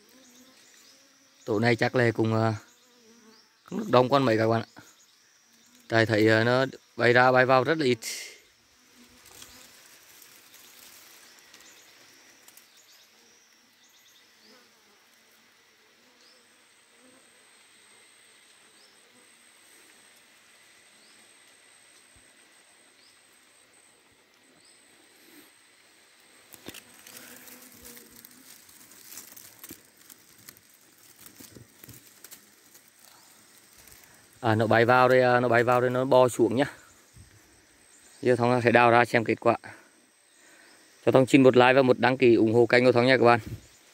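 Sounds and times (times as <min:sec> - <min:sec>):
honeybees buzzing: 0:00.0 - 0:39.4
high steady insect trill: 0:00.0 - 0:43.9
rustling in dry leaves: 0:05.9 - 0:15.5, 0:19.4 - 0:38.8, 0:42.6 - 0:43.9.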